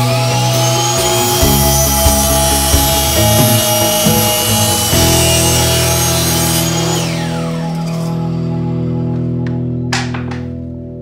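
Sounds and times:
miter saw cutting wood: 0:00.0 - 0:08.5.

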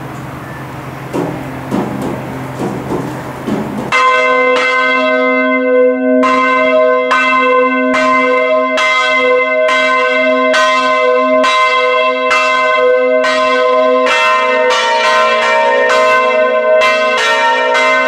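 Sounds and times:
low hum: 0:00.0 - 0:03.9
mechanical noise: 0:00.0 - 0:03.9
church bells ringing: 0:00.0 - 0:18.0.

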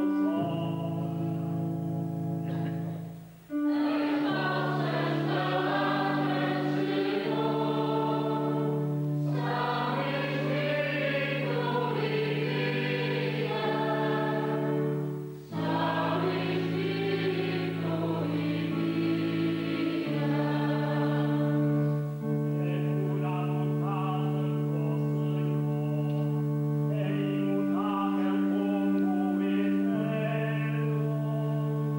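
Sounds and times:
church choir singing: 0:00.0 - 0:31.9
held keyboard chords: 0:00.0 - 0:31.9.

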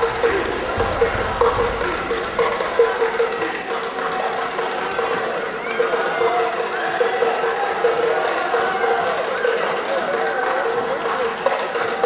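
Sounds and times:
indistinct voices: 0:00.0 - 0:12.0
taps and claps: 0:06.2 - 0:12.0.

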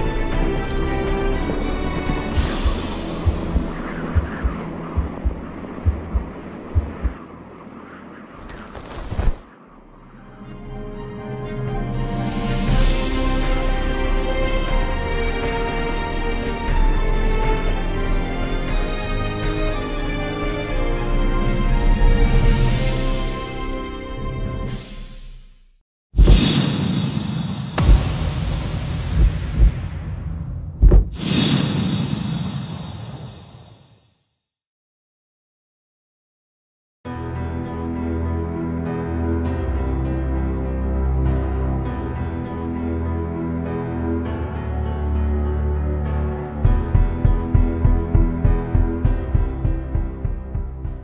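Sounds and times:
low drone: 0:00.0 - 0:08.6
deep low thuds: 0:02.4 - 0:07.2, 0:27.8 - 0:31.2, 0:46.7 - 0:51.0
heartbeat thumps: 0:02.4 - 0:07.3, 0:28.9 - 0:30.0, 0:30.8 - 0:31.2, 0:46.6 - 0:51.0.

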